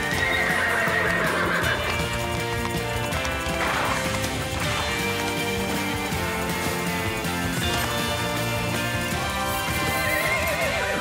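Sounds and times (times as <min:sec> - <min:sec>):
horse whinnying: 0:00.0 - 0:05.2, 0:09.2 - 0:11.0
background music: 0:00.0 - 0:11.0.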